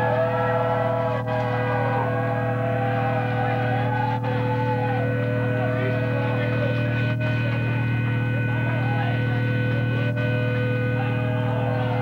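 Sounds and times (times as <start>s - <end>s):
electric guitar feedback: 0.0s - 12.0s
loud amplifier hum: 0.0s - 12.0s.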